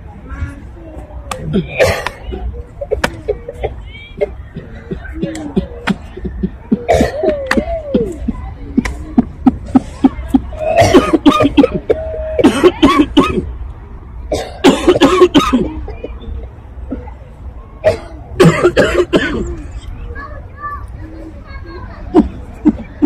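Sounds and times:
person coughing hard: 1.5s - 7.8s, 10.0s - 13.5s, 14.3s - 15.8s, 17.8s - 19.6s.

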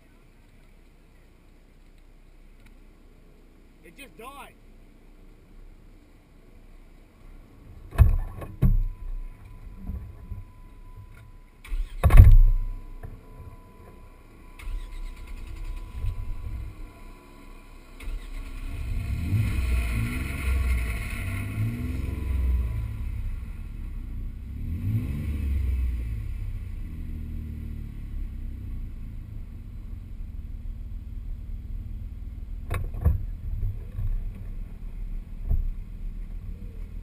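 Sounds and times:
loud thump: 7.9s - 8.9s, 12.0s - 12.6s
engine revving through mud: 17.8s - 29.5s.

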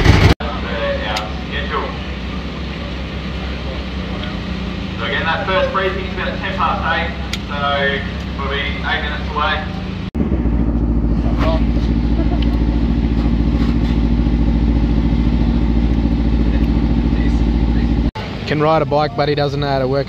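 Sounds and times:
engine idling: 0.0s - 20.0s.

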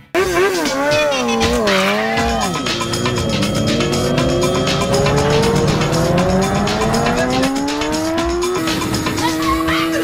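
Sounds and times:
motorcycle engine revving: 0.2s - 10.0s.

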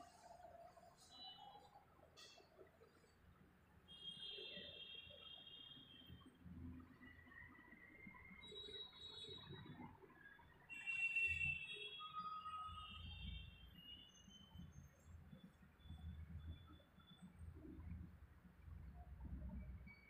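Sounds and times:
faint high bird chirps: 0.0s - 3.1s.

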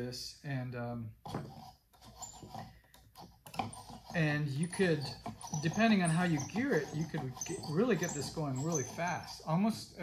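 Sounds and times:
wooden linkage creaking and squeaking: 1.2s - 10.0s.

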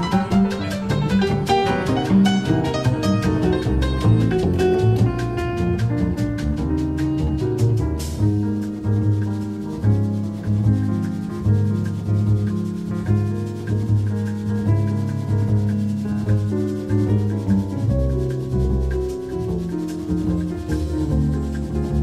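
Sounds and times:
drums keeping steady rhythm: 0.0s - 22.0s
piano: 0.0s - 22.0s
walking double bass: 0.0s - 22.0s.

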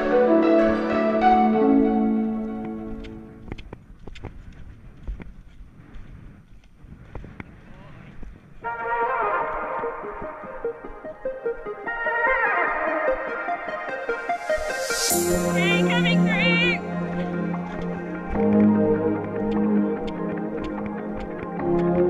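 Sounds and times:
sustained brass-like chords: 0.0s - 3.4s, 12.8s - 22.0s
busy synth music: 0.0s - 3.5s, 8.6s - 22.0s.

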